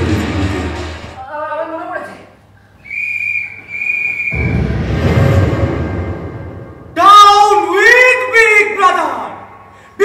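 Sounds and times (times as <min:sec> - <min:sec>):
shrill whistle blasts: 0:02.8 - 0:04.7
loud deep rumble: 0:04.3 - 0:07.0.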